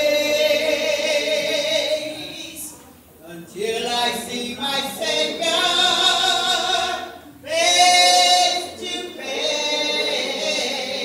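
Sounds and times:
slow a cappella singing: 0.0 - 11.0.

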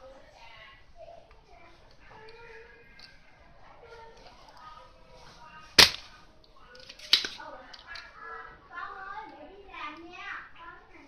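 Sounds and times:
desoldering pump snap: 5.8 - 6.1, 6.8 - 7.4.

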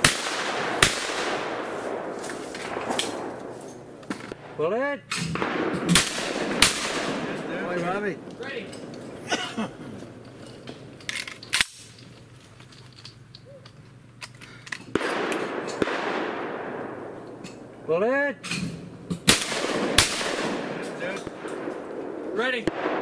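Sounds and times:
shotgun shots: 0.0 - 3.5, 4.1 - 8.2, 14.9 - 17.2, 19.2 - 23.0.

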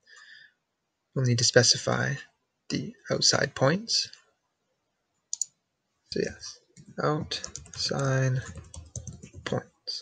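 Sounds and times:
computer mouse clicks: 5.3 - 5.6, 6.8 - 9.6.

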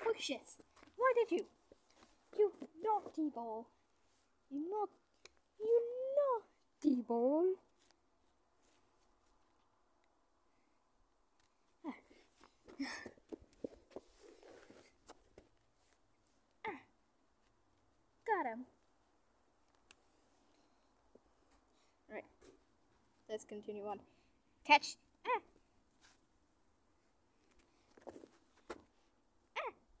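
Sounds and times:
faint rustle: 0.0 - 6.8, 7.5 - 16.6, 25.2 - 29.4.

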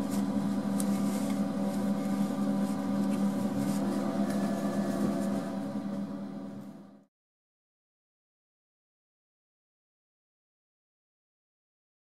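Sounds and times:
machine humming: 0.0 - 7.1.

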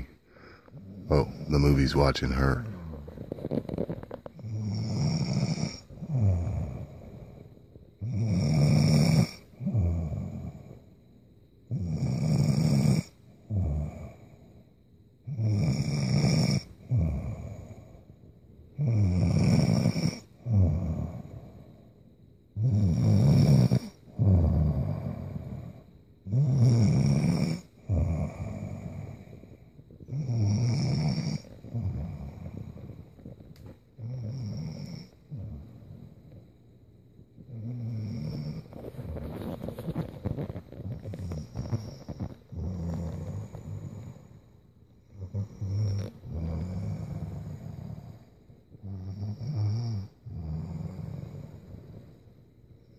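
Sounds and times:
woman snoring: 0.0 - 10.8, 11.7 - 14.4, 15.3 - 18.0, 18.8 - 21.6, 22.6 - 29.4, 30.1 - 33.1, 34.0 - 36.4, 37.5 - 44.4, 45.1 - 52.1.

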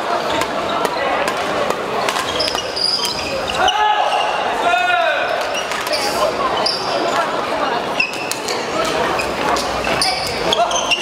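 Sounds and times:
rackets striking shuttlecock: 0.3 - 3.2
shoes squealing on court: 2.1 - 4.4, 5.3 - 7.3, 8.0 - 11.0.

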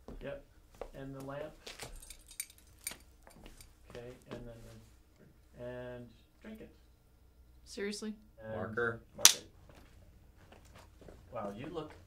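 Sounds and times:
small objects clicking and clinking: 1.8 - 3.0.

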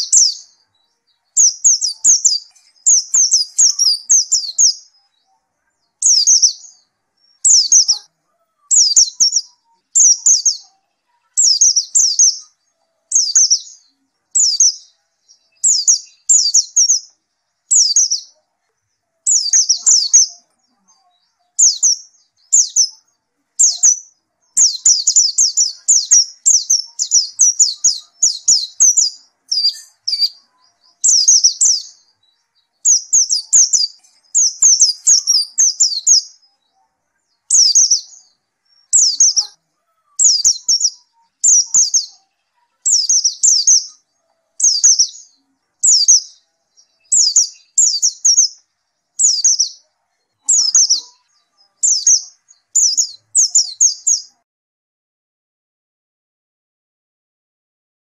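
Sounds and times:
bird singing high thin chirps: 0.0 - 54.4.

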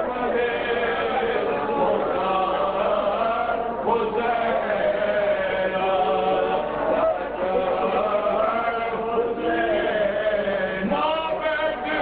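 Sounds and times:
crowd of men chanting: 0.0 - 12.0.

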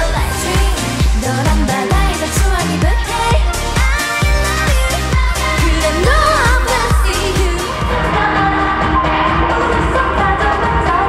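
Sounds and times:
female group singing: 0.0 - 11.0
steady bass drum beat: 0.0 - 11.0.

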